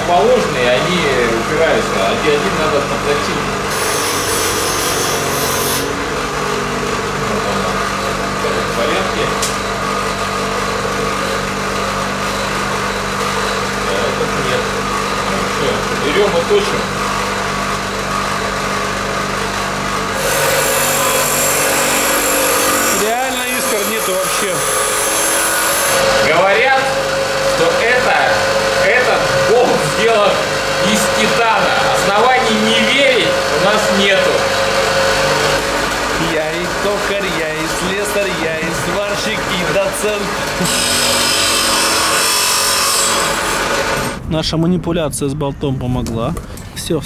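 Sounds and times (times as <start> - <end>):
bench grinder humming: 0.0 - 44.2.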